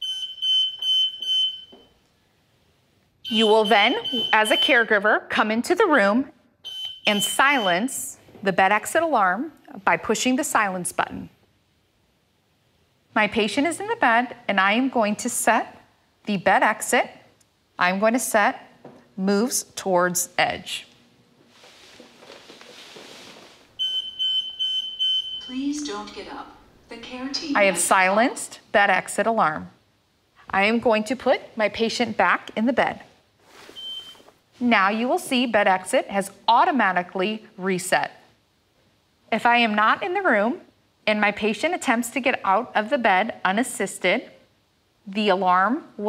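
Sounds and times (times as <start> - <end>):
rapid pulsing electronic alarm: 0.0 - 1.9, 3.2 - 4.9, 6.7 - 7.9, 23.8 - 25.8
faint rustling: 21.4 - 23.9.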